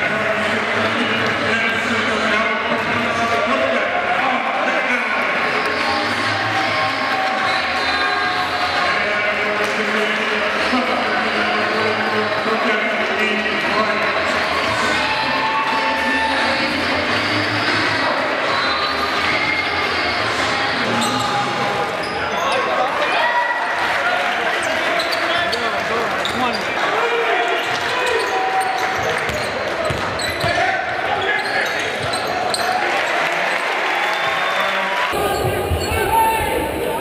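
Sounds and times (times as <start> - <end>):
crowd chatter: 0.0 - 37.0.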